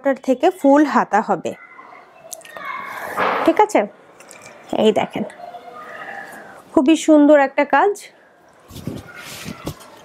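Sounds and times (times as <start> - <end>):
fabric rustling: 8.6 - 10.0.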